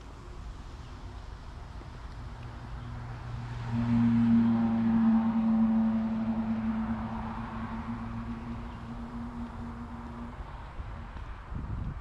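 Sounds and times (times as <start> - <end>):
vehicle hum over road rumble: 0.0 - 12.0.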